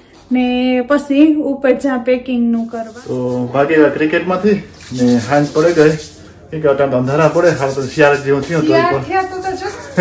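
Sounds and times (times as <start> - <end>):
man talking: 3.1 - 9.0.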